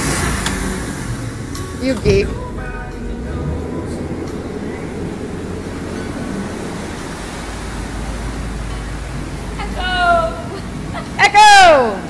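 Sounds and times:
motorboat engine: 0.0s - 12.0s
water rushing along hull: 0.0s - 12.0s.

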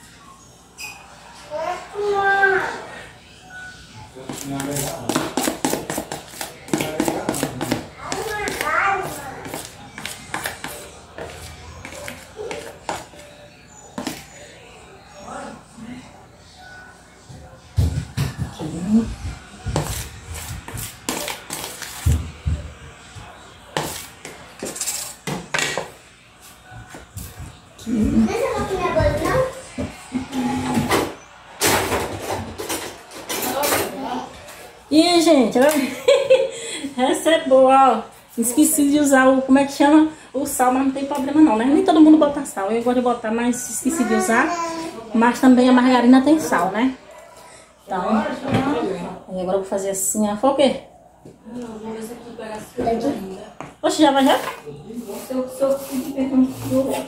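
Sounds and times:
spatula scraping plastic bowl: 4.2s - 13.2s, 19.7s - 22.2s, 54.1s - 57.0s.

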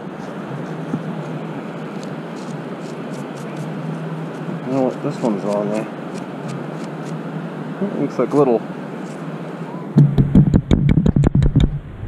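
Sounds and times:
surf on a beach: 0.0s - 10.3s
wind: 0.0s - 12.0s.

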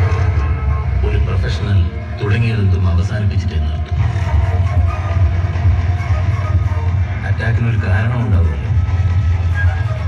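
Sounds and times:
music with loud bass: 0.0s - 10.0s.

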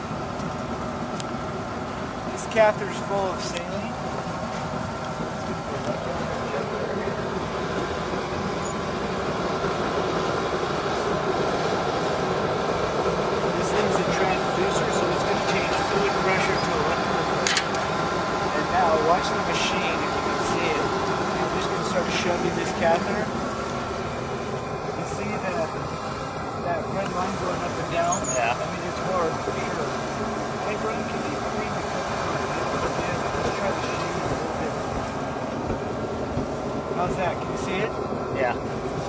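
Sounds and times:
faint voices: 0.0s - 9.1s, 13.2s - 39.0s
steady mechanical hum: 0.0s - 39.0s.

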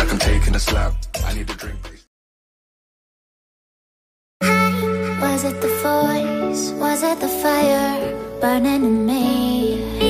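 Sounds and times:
music: 0.0s - 2.1s, 4.4s - 10.0s.

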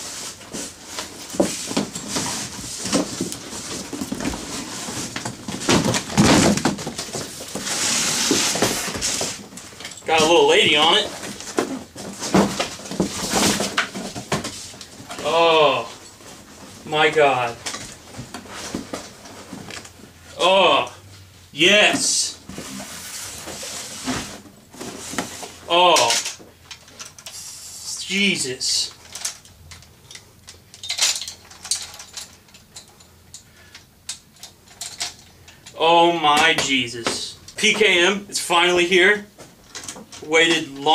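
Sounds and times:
cardboard rustling and scraping: 0.0s - 20.1s, 21.9s - 25.7s.

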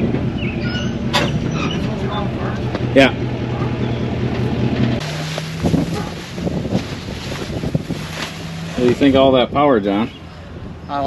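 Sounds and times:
engine humming: 0.0s - 11.0s
wind buffeting microphone: 0.0s - 11.0s.

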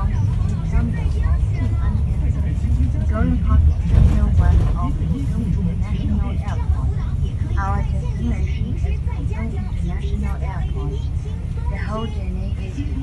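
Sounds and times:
bus rumbling: 0.0s - 13.0s.

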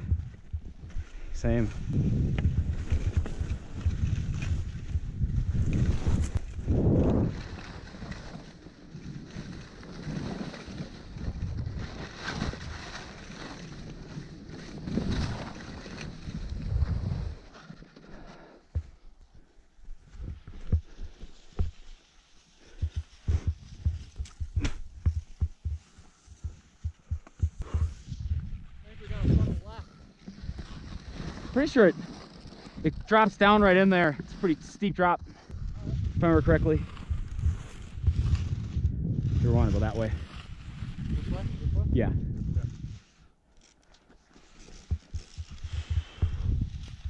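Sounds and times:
wind rushing over microphone: 0.0s - 7.9s, 14.9s - 17.5s, 22.7s - 31.6s, 35.2s - 43.1s, 44.9s - 47.0s
skis scraping over snow: 0.6s - 19.0s, 20.0s - 47.0s.

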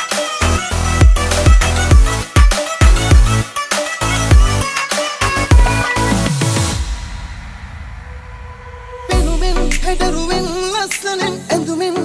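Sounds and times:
music: 0.0s - 12.0s
low rumbling noise wash: 6.7s - 10.8s.

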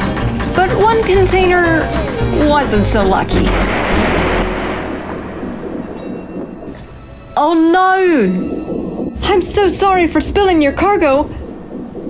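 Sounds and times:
low rumble: 0.5s - 12.0s
water splashing: 0.5s - 12.0s.

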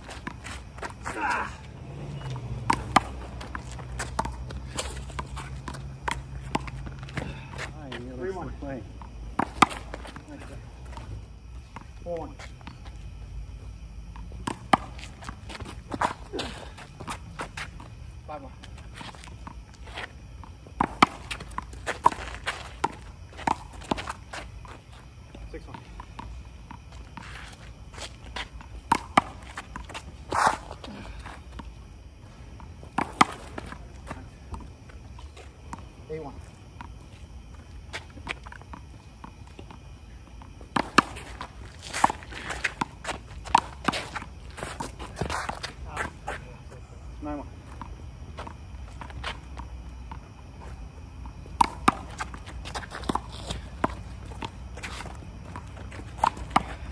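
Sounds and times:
sneaker footsteps and scuffs: 0.0s - 8.1s, 9.0s - 18.0s, 18.6s - 25.1s, 26.7s - 31.7s, 40.4s - 47.0s, 47.6s - 49.8s, 50.5s - 56.9s.

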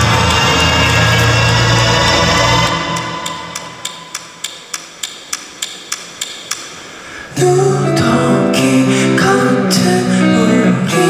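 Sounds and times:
high percussion click: 2.8s - 7.0s.

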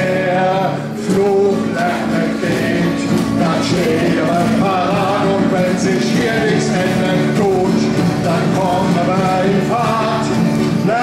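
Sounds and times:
acoustic guitar: 0.0s - 11.0s
group of voices singing: 0.0s - 11.0s.

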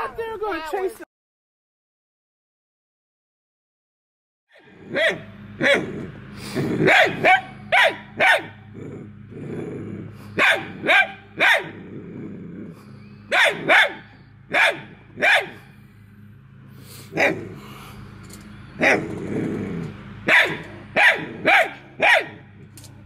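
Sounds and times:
dog barking sharply: 6.9s - 8.6s, 10.4s - 11.8s, 13.3s - 15.6s, 20.3s - 22.4s.

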